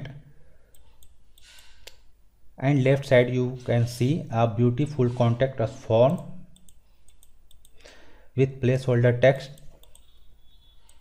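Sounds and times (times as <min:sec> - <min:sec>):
computer mouse clicks: 0:00.7 - 0:02.1, 0:06.0 - 0:07.8, 0:09.4 - 0:11.0.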